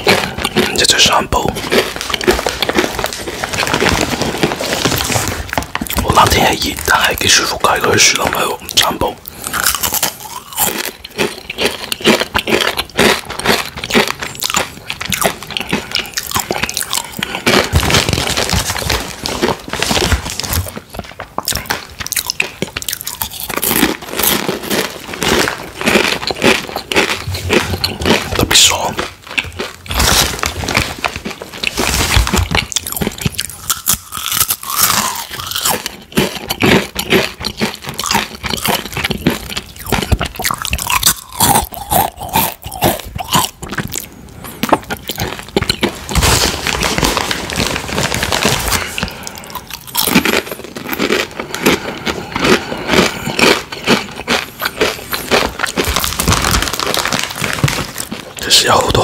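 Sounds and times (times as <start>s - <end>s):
crunching tortilla chips: 0.0s - 59.0s.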